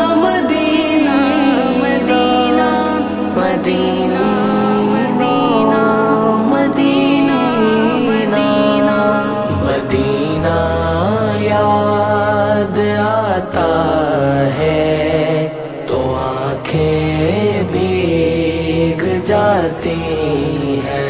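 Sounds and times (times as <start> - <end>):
held vocal drone: 0.0 - 21.0
wordless vocal chanting: 0.0 - 21.0.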